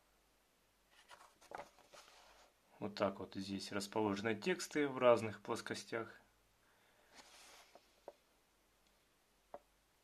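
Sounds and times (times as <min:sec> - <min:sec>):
paper booklet rustling: 0:00.9 - 0:02.6, 0:07.1 - 0:08.1.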